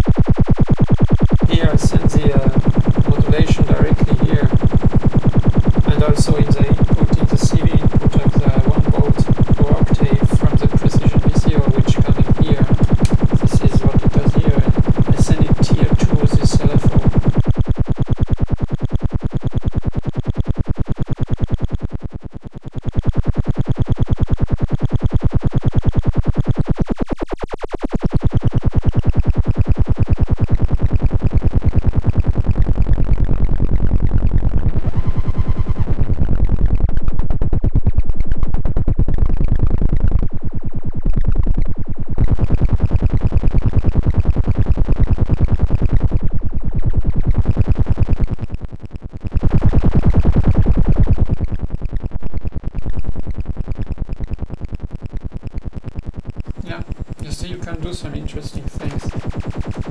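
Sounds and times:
synthesizer fast pulse: 0.0s - 59.9s.

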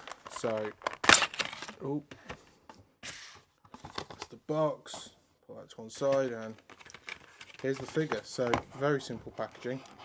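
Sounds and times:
packaging clicks and rustling: 0.0s - 2.4s, 6.0s - 8.6s.

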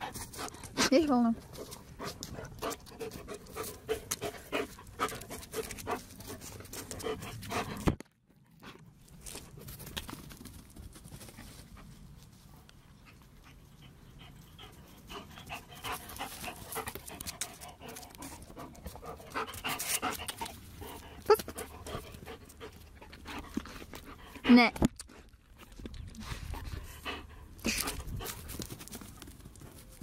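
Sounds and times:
large dog panting: 0.0s - 7.9s, 12.9s - 25.4s, 26.2s - 29.9s.

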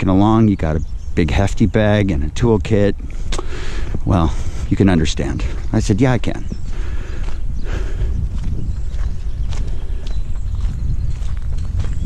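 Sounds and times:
footsteps on park path: 0.0s - 12.0s
low rumble on microphone: 0.0s - 12.0s.

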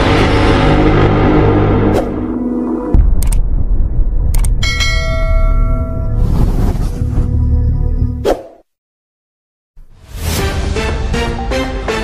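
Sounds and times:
deep low rumble: 0.0s - 8.2s
bell ding: 4.6s - 6.2s.

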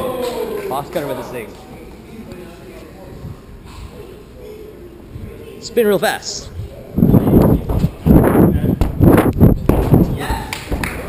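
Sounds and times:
wind gusts on microphone: 6.5s - 10.3s.

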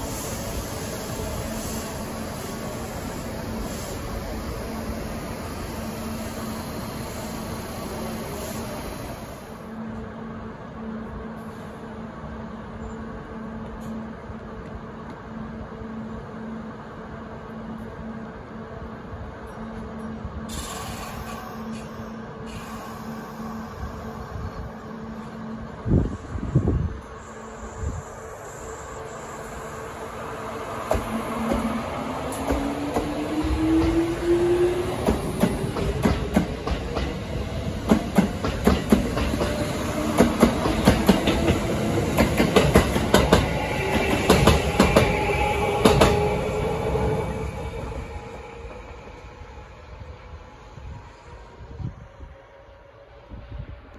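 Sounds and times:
electric trains idling hum: 0.0s - 53.9s.

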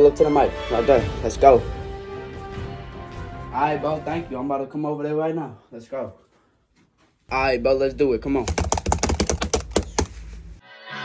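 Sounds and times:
rapid sharp clicks: 8.3s - 10.1s.

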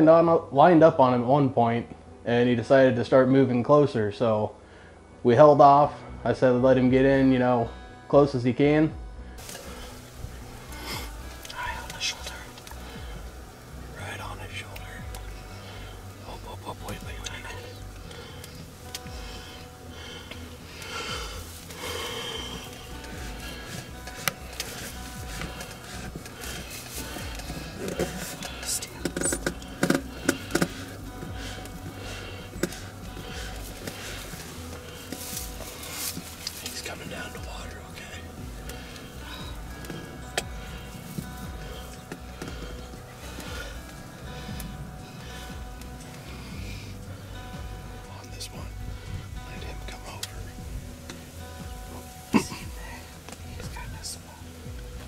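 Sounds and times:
background music with low bass: 0.0s - 55.0s
people whispering: 9.4s - 54.8s.

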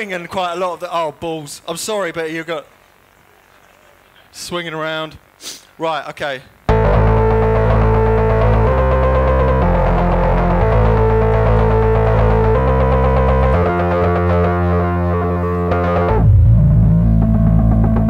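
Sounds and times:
deep sweeping tone: 6.7s - 18.0s
synthesizer bass line: 6.7s - 18.0s
synthesizer chords: 6.7s - 18.0s.

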